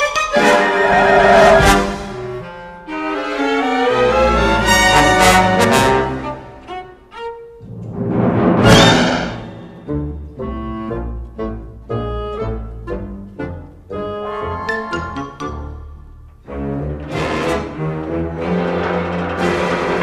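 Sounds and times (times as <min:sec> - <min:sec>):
orchestral cartoon music: 0:00.0 - 0:20.0
loud rushing noise burst: 0:07.6 - 0:10.2.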